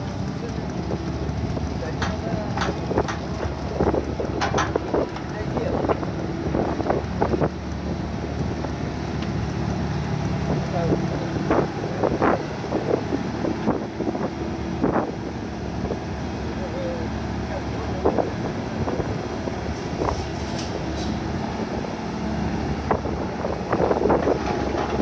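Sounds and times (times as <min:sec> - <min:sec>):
excavator diesel engine running: 0:00.0 - 0:25.0
knocks and clanks: 0:00.1 - 0:07.4, 0:23.8 - 0:25.0.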